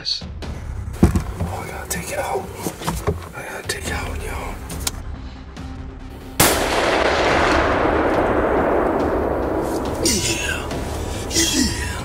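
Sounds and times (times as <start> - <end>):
gunshot with rolling echo: 6.4 - 10.0.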